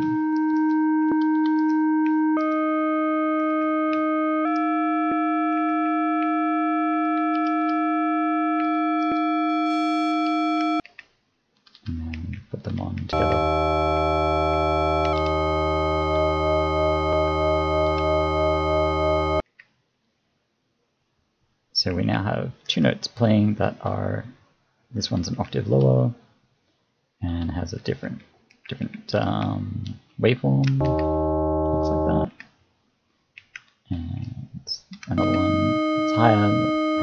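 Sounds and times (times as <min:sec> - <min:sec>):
deep fm tone with bass: 0:13.2 - 0:19.4, 0:30.5 - 0:32.3, 0:35.1 - 0:37.0
fm synth held note: 0:13.2 - 0:19.4, 0:30.8 - 0:32.3, 0:35.2 - 0:37.0.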